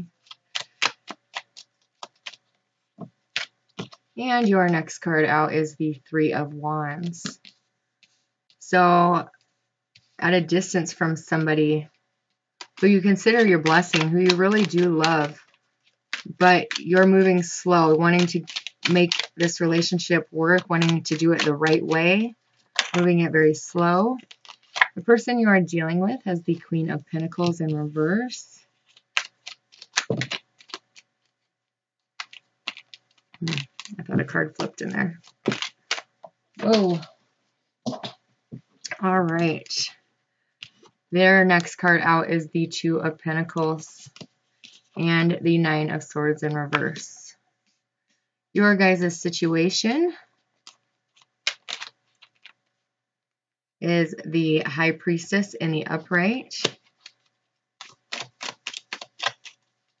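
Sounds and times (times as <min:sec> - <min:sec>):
cards being shuffled: 0:00.0 - 0:04.5, 0:06.9 - 0:08.6, 0:12.6 - 0:23.2, 0:24.2 - 0:25.0, 0:28.7 - 0:31.4, 0:32.2 - 0:37.2, 0:50.6 - 0:52.6, 0:56.6 - 1:00.0.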